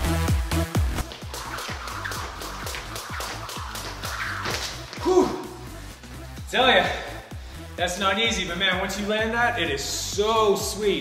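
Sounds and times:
electronic background music: 0.0 - 11.0
jump rope whipping and ticking: 0.8 - 5.1.

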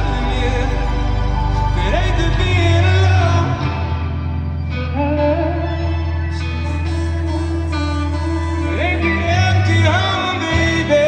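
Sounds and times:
electric guitar notes: 0.0 - 11.0
live band playing: 0.0 - 11.0
low bass held steadily: 0.0 - 11.0.

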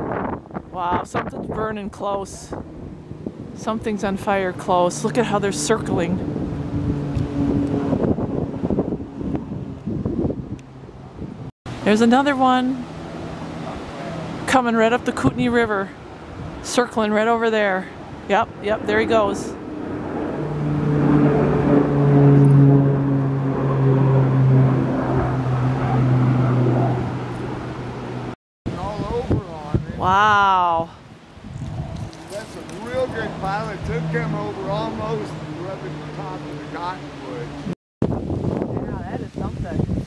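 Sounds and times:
distant aircraft engines droning: 0.0 - 30.0, 30.7 - 37.8
wind buffeting microphone: 0.0 - 40.0.

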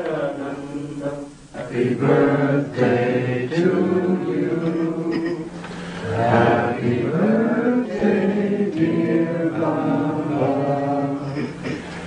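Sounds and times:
group chanting in unison: 0.0 - 11.6.

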